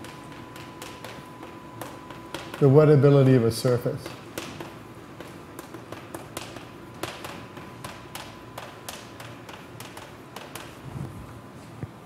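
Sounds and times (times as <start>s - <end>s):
chalk tapping and scratching on blackboard: 4.0s - 10.8s.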